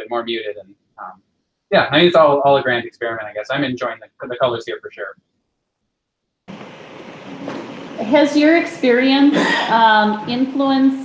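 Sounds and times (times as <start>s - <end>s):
faint voice: 0.0s - 1.1s, 1.7s - 5.1s
microphone and room hiss: 0.0s - 5.1s, 6.5s - 11.0s.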